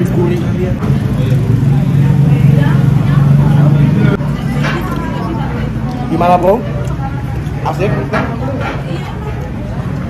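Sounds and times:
loud low engine drone: 0.0 - 4.7
background chatter: 0.0 - 10.0.

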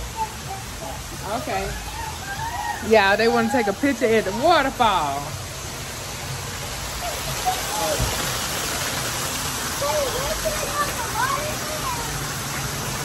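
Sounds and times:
waterfall splashing into stone basin: 0.0 - 13.0.

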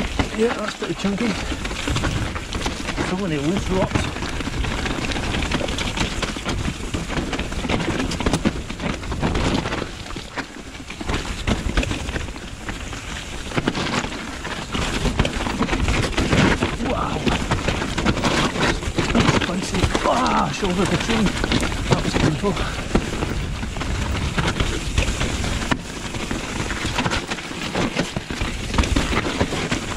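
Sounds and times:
bike and camera rattling: 0.0 - 29.9
bike tyres rumbling over rocks: 0.0 - 29.9
wind on microphone: 0.0 - 29.9.

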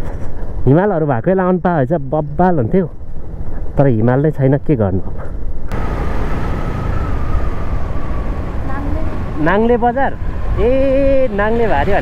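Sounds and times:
motorcycle engine running: 5.7 - 6.7.

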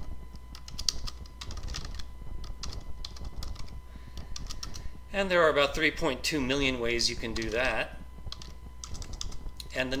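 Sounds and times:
steady low hum: 0.0 - 10.0
typing on computer keyboard: 0.5 - 3.7, 4.4 - 4.8, 8.3 - 9.4.

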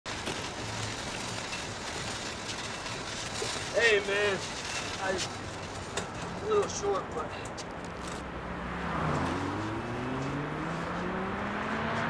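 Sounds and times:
distant traffic: 0.1 - 12.0.

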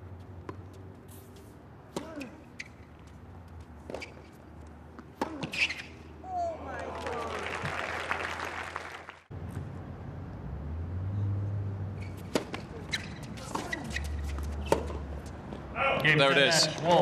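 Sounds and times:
tennis racket hitting ball: 12.2 - 15.0.

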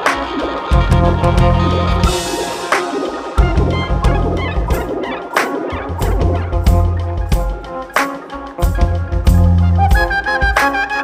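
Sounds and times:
live funk band playing: 0.0 - 11.0.

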